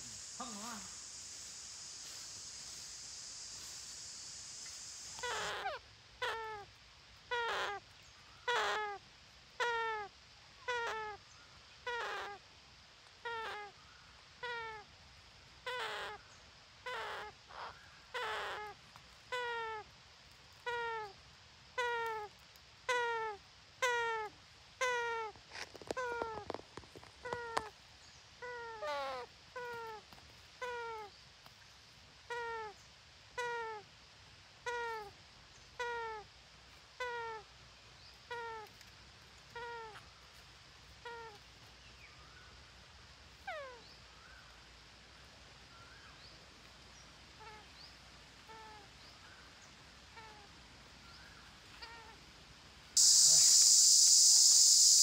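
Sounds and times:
animal call with falling pitch: 53.0 - 55.0.

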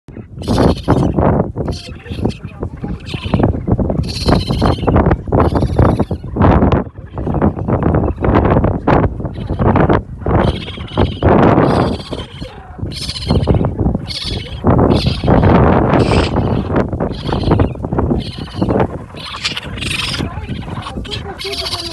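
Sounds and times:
raccoon kits crying: 0.2 - 8.0, 9.2 - 21.9.

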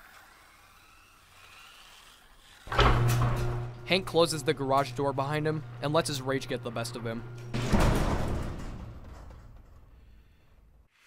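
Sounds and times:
garage door closing: 2.5 - 10.9
steady low hum: 2.7 - 10.9.

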